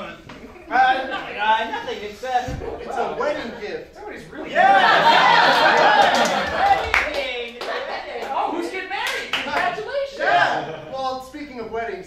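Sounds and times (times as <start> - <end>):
audience clapping: 5.4 - 9.8.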